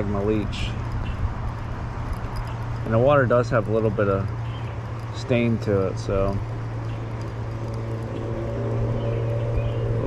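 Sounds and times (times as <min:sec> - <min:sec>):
low outdoor rumble: 0:00.0 - 0:10.0
man speaking: 0:05.2 - 0:06.4.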